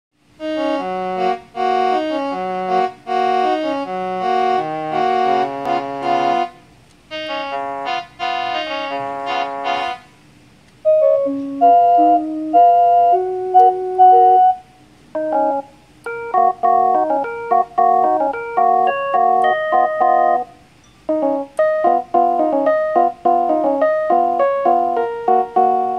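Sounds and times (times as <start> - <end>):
keyboard violin melody: 0.4 - 10.1, 10.9 - 25.9
keyboard trumpet melody: 0.4 - 10.3, 10.9 - 25.9.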